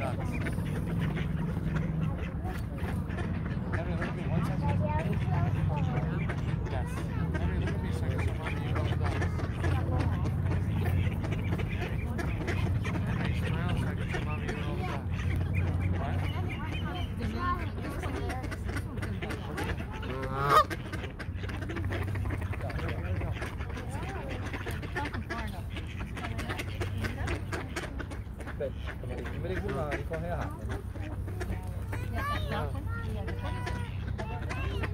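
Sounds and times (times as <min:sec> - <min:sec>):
goose honking: 0:00.0 - 0:34.9
low steady hum: 0:00.0 - 0:34.9
soft bird calls: 0:00.0 - 0:34.9.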